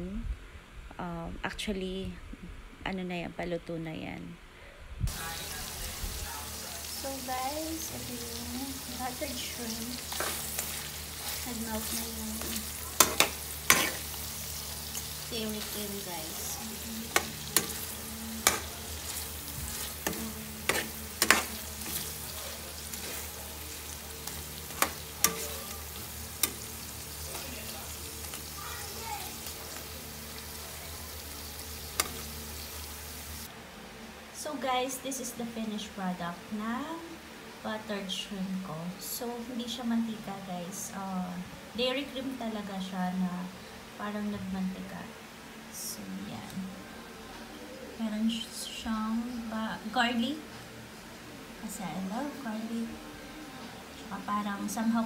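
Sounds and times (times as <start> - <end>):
shrimp sizzling in a pan: 5.1 - 33.5
spatula stirring: 9.4 - 30.4.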